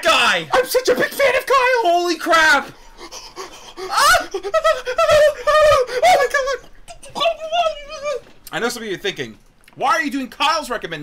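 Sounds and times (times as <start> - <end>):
man squealing in falsetto: 2.4 - 8.3.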